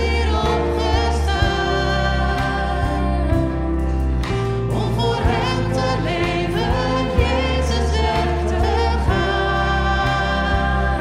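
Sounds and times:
man and woman singing: 0.0 - 3.8, 4.7 - 11.0
bass notes: 0.0 - 11.0.

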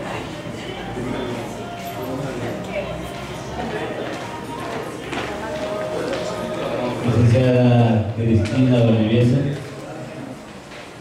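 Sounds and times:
indistinct chatter of voices: 0.0 - 11.0
footsteps on a hard floor: 4.0 - 6.5.

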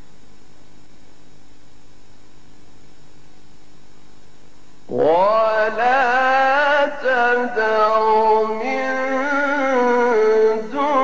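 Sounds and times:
low steady hum: 0.0 - 11.0
man reciting melodically: 4.9 - 11.0.

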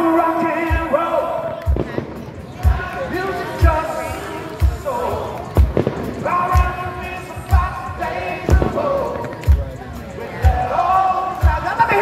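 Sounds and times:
live band playing: 0.0 - 12.0
kick drum beat: 1.7 - 3.8, 4.6 - 9.8
person singing: 2.6 - 12.0.

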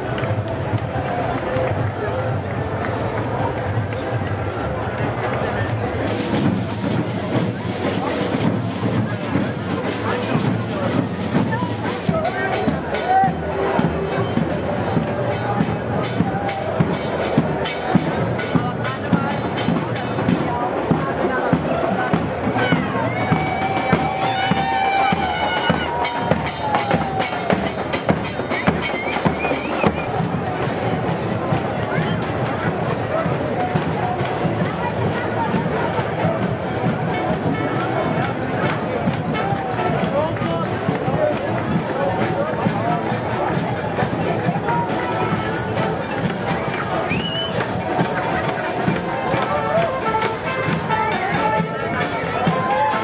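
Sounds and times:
crowd chatter: 0.0 - 53.0
parade music with drumbeat: 0.0 - 53.0.

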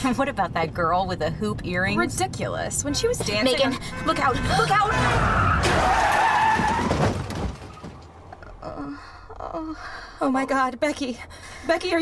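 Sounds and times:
car tyres screeching: 2.7 - 8.2
crash thud: 5.5 - 8.2.

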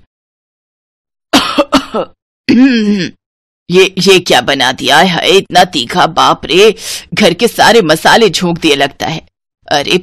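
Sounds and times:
woman coughing: 1.3 - 3.2.

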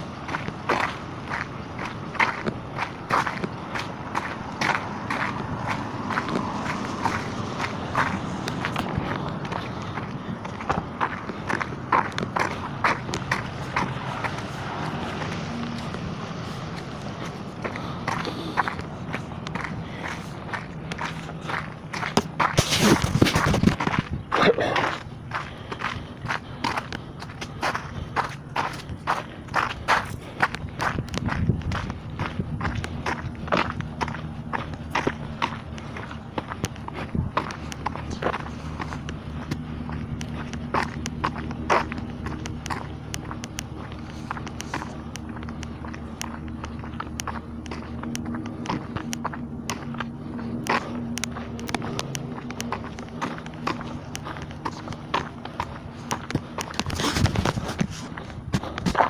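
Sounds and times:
footsteps walking: 0.0 - 59.0
steady low hum: 0.0 - 59.0.

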